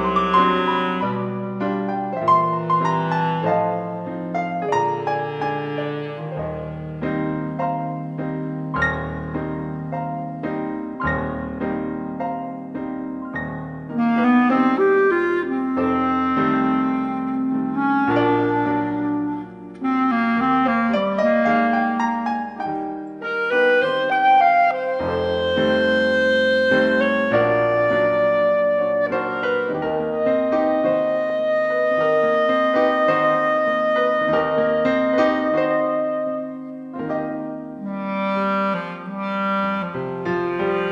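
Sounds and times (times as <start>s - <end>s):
clarinet melody: 0.0s - 40.9s
piano chords: 0.0s - 40.9s.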